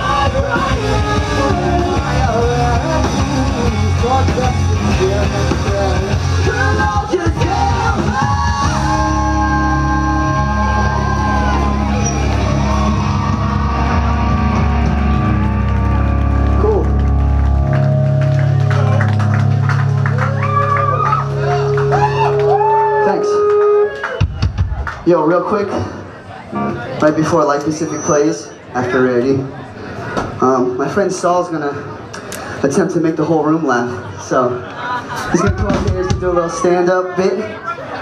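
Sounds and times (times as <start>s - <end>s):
live rock band playing: 0.0s - 25.0s, 35.3s - 36.6s.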